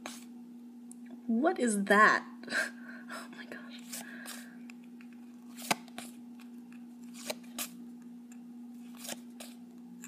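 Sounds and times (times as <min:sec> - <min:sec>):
cards being flipped: 0:03.9 - 0:07.8, 0:08.8 - 0:09.6.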